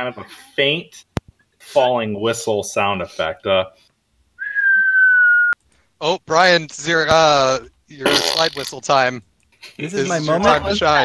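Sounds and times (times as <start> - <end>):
falling whistle: 4.4 - 5.6.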